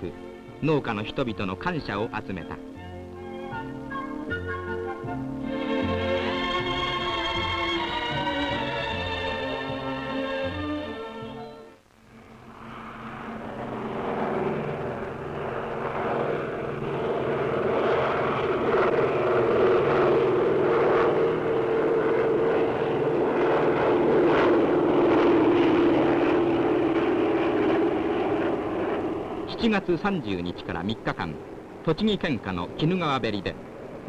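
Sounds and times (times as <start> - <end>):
propeller aircraft engines droning: 0.0 - 34.0.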